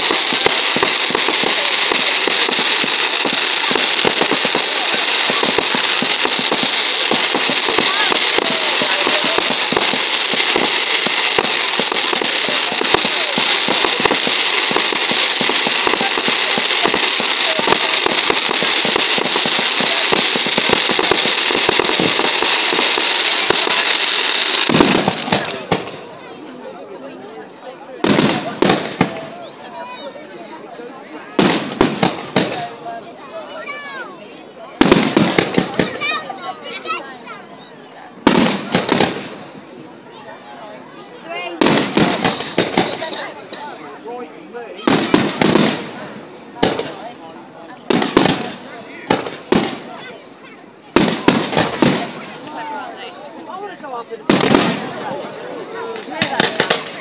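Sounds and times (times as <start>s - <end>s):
firework bangs: 0.0s - 26.2s, 28.0s - 30.0s, 31.2s - 36.8s, 38.2s - 40.3s, 41.1s - 44.0s, 44.8s - 47.2s, 47.8s - 53.1s, 53.7s - 57.0s
fireworks crackling: 0.0s - 57.0s.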